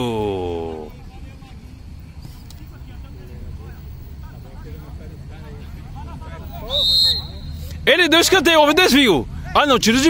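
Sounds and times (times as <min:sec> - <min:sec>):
distant players calling out: 0:00.0 - 0:01.8.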